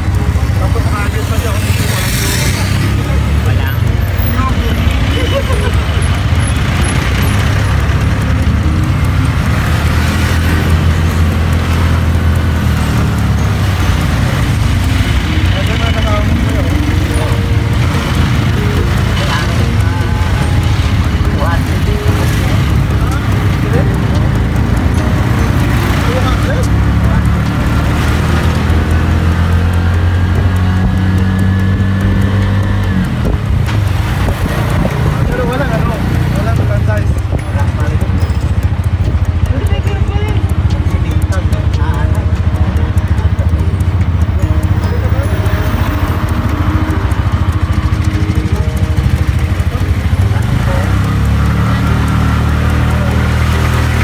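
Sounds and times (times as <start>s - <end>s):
vehicle engine and road rumble: 0.0s - 54.0s.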